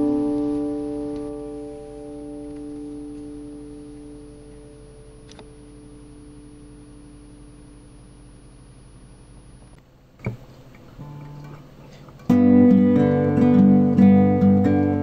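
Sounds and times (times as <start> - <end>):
guitar chord ringing: 0.0 - 7.6, 11.0 - 15.0
recording hiss and hum: 0.0 - 15.0.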